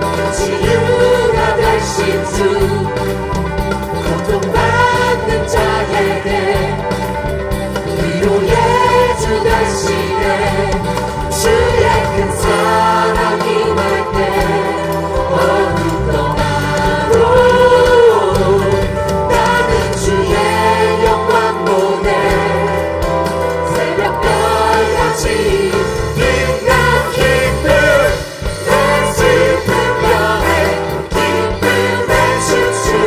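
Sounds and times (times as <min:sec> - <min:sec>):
choir singing praise song: 0:00.0 - 0:33.0
instrumental accompaniment: 0:00.0 - 0:33.0.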